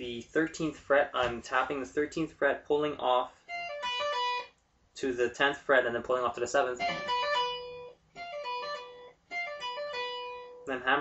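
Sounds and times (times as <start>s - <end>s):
electric guitar tapped arpeggio: 3.5s - 4.5s, 6.8s - 10.7s.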